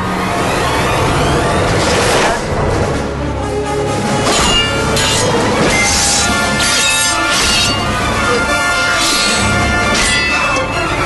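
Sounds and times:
sword blades clashing: 4.3 - 10.7.

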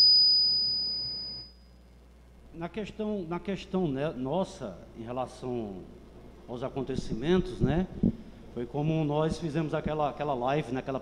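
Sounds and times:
microphone feedback whistle: 0.0 - 1.6.

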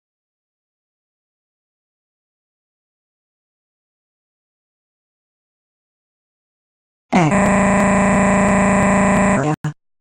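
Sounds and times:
synthetic voice vowel monotone: 7.1 - 9.8.

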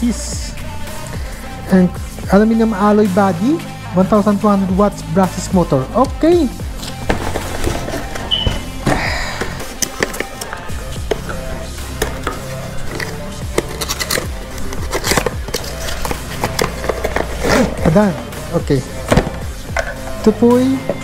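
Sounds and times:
background music: 0.0 - 21.0
cardboard packaging rustling: 6.8 - 11.3, 11.9 - 18.1.

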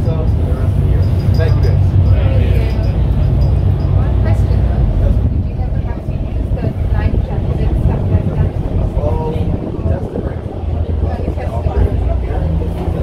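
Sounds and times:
boat engine rumbling: 0.0 - 13.0
indistinct voices: 0.0 - 13.0.

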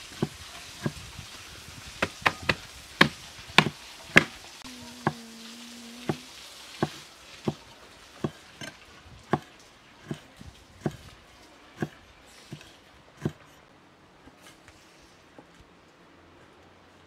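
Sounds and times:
cleaver chopping on wooden board: 2.0 - 4.4, 6.8 - 7.6, 8.2 - 8.7, 9.3 - 9.5, 10.1 - 11.1, 11.8 - 13.5.

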